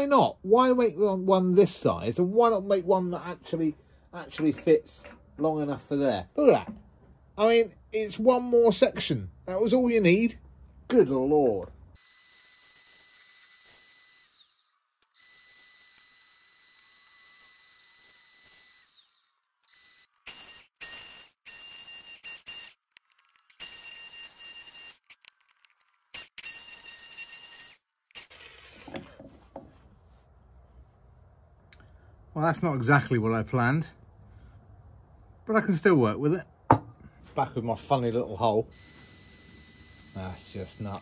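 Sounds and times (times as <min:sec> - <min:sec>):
wood lathe whine: 0:12.0 - 0:20.1, 0:38.8 - 0:41.0
jigsaw motor bursts: 0:12.0 - 0:22.8, 0:38.8 - 0:41.0.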